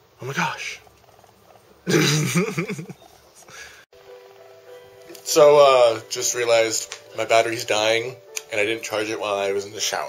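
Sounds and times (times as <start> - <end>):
dog vocalizing: 0.8 - 3.5.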